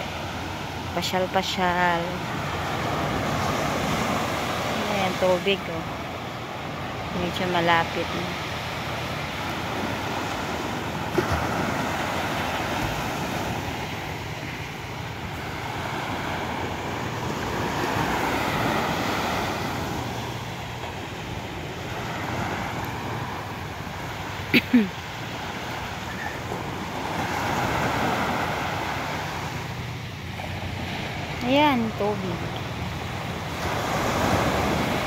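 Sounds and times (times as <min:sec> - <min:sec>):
sea water washing against shore: 0:08.0 - 0:35.0.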